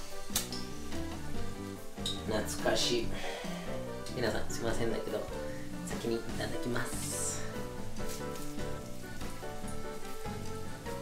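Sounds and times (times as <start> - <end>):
background music: 0.0 - 11.0
oil sizzling in a frying pan: 0.0 - 11.0.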